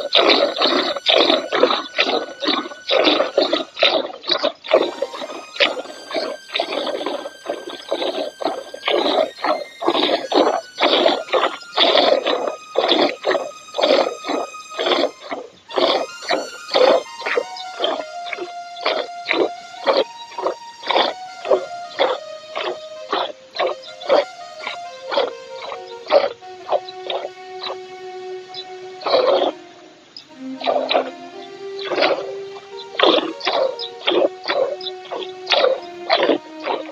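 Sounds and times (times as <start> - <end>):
background music: 0.0 - 36.9.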